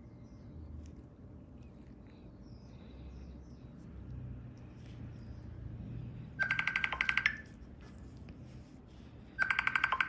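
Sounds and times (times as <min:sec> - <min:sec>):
mobile phone ringing: 0:06.4 - 0:07.5, 0:09.4 - 0:10.0.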